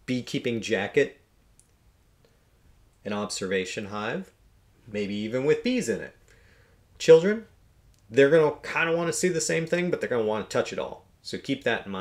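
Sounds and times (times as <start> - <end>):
man speaking: 0.0 - 1.2, 3.0 - 6.2, 7.0 - 12.0.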